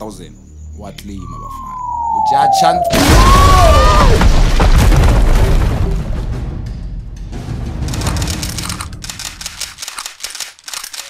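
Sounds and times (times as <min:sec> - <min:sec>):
cartoon explosion rumble: 0:01.8 - 0:06.2
rapid rattle of sharp clicks: 0:07.8 - 0:11.0.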